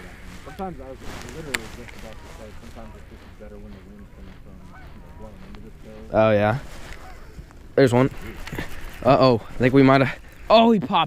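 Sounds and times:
geese honking: 0.0 - 10.8.

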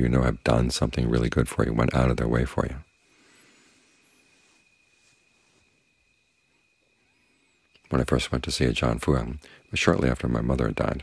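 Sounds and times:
faint high-pitched tone: 0.0 - 11.0.

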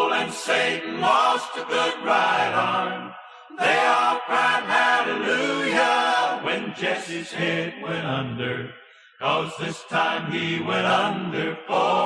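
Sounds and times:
country gospel song: 0.0 - 12.0.

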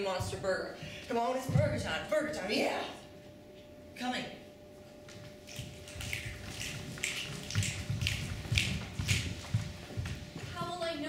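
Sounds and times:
footsteps on wooden stage: 0.0 - 2.4, 4.9 - 11.0.

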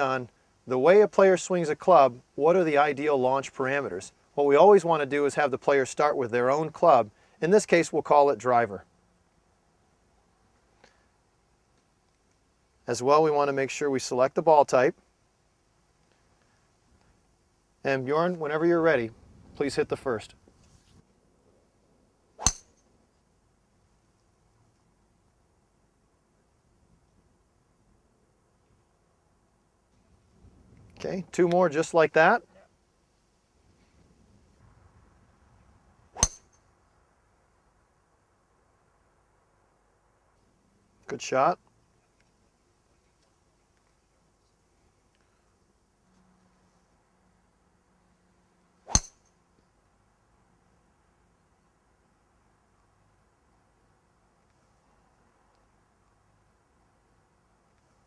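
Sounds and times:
golf club striking ball: 22.4 - 22.8, 36.1 - 36.6, 48.8 - 49.3.

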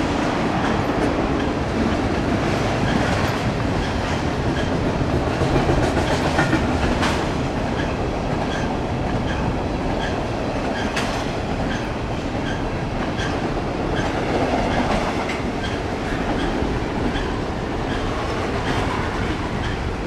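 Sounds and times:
steel wheels rumbling on rail: 0.0 - 20.0.

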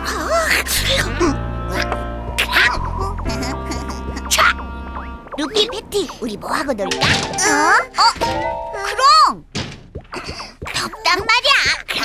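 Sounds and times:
light background music: 0.0 - 8.9
dull thud: 9.5 - 10.9.

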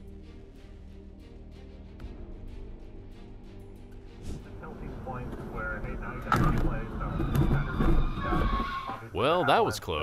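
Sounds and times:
car engine and road rumble: 4.3 - 8.2.

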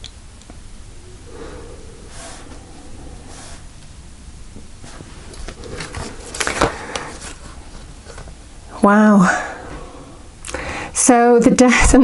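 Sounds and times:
cards sliding and rustling: 4.8 - 8.3.

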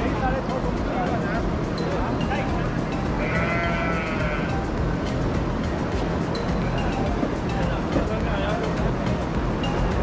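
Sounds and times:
background music: 0.0 - 10.0
animal pen noise: 3.0 - 4.7
animal bleating: 3.1 - 4.6.

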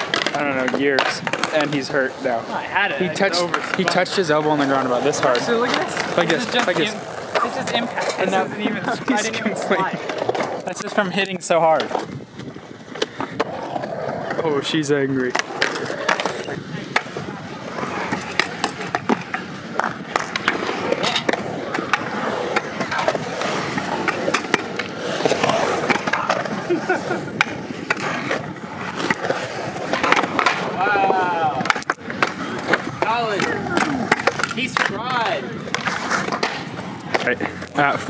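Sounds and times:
wheels rolling over concrete: 0.0 - 38.0
background voices: 0.2 - 10.7
person laughing: 8.4 - 9.6, 26.4 - 27.4.

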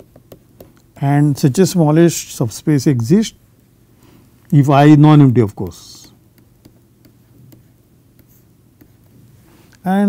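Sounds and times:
stylus tapping on pen tablet: 0.0 - 0.9, 5.5 - 9.2.

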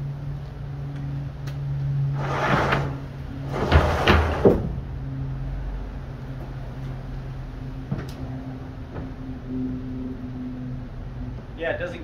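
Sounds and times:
slide rolling on roller bearings: 2.1 - 4.6.

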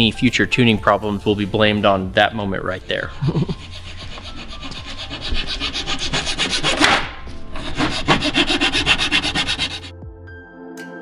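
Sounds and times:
rapid rasping scrape: 2.9 - 9.9.

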